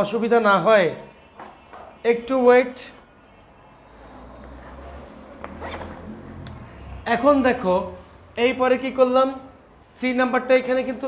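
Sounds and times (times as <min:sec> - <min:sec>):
rasping zipper-like rustle: 0:04.6 - 0:06.4.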